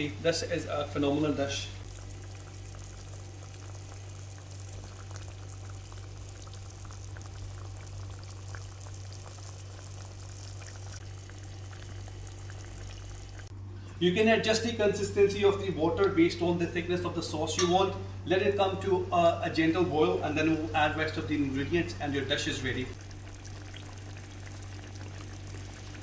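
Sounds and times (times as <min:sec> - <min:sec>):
curry simmering and bubbling: 0:01.8 - 0:13.5, 0:22.9 - 0:26.0.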